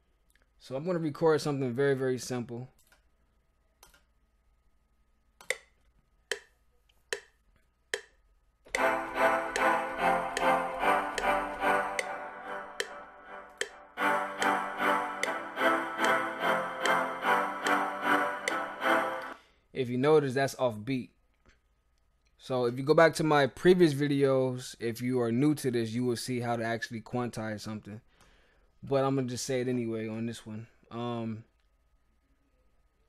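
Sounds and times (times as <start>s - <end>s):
metronome ticks: 6.3s - 6.5s, 7.1s - 12.1s, 12.8s - 16.2s, 16.8s - 17.0s, 17.6s - 17.8s, 18.4s - 18.6s
synthesizer chords: 8.7s - 19.4s.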